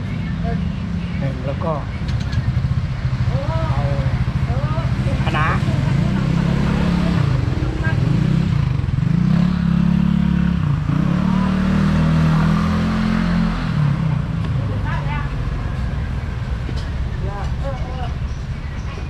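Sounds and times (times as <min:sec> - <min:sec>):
motorcycle engine pulling away: 0:02.1 - 0:14.4.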